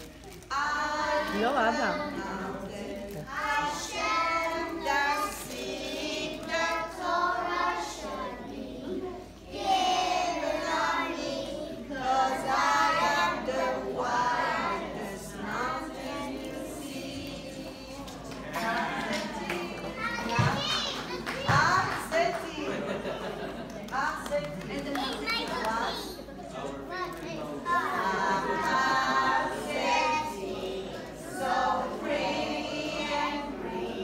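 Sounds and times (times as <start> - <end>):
young children singing: 0.0 - 21.9, 27.0 - 34.0
children calling and chattering: 17.0 - 31.7.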